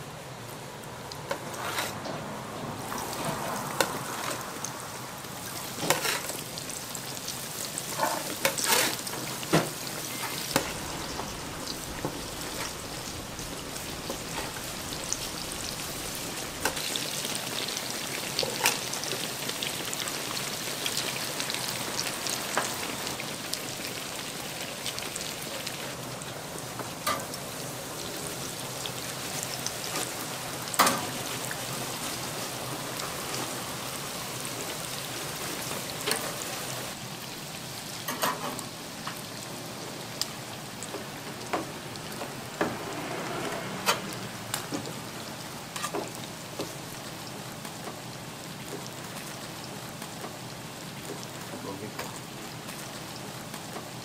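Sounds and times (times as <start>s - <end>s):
food deep-frying in oil: 0.0s - 54.0s.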